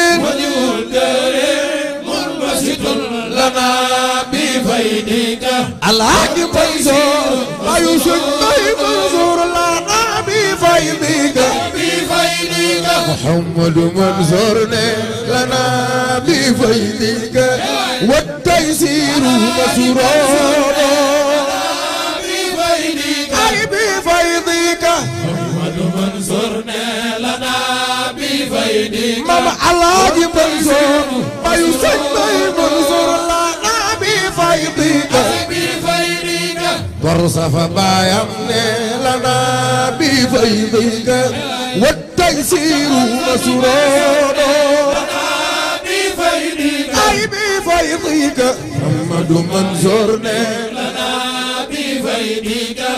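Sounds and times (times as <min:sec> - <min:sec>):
men singing a religious chant: 0:00.0 - 0:52.9.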